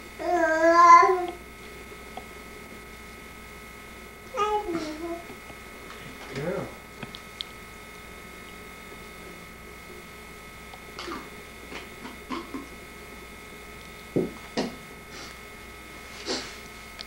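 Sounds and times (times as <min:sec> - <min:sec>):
steady electrical hum: 0:00.0 - 0:17.0.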